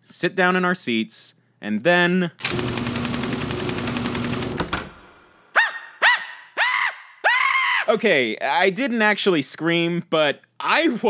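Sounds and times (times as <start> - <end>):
high-pitched screams: 5.5 - 7.9.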